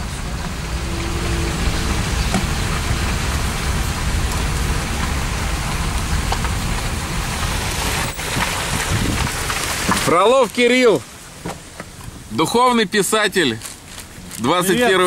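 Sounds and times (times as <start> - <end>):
street traffic: 0.0 - 15.0
wind on microphone: 8.2 - 9.5.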